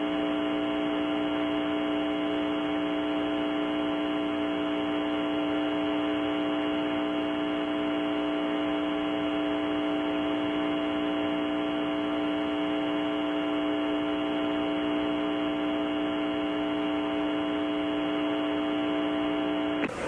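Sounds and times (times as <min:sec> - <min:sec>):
electrical hum: 0:00.0 - 0:20.0
steady tones: 0:18.0 - 0:20.0.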